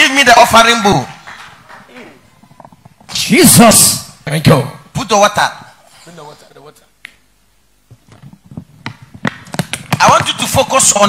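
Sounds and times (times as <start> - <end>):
sharp knocks and clicks: 7.9 - 10.4.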